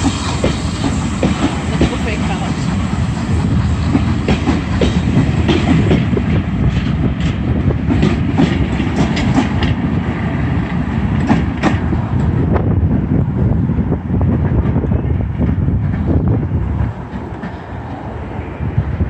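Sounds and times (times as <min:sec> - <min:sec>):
train wheels clacking over rail joints: 0:00.0 - 0:10.0, 0:10.6 - 0:12.4.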